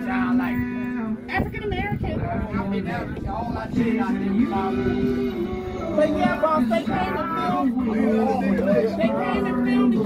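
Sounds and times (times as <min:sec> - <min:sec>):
group chatter: 0:00.0 - 0:10.0.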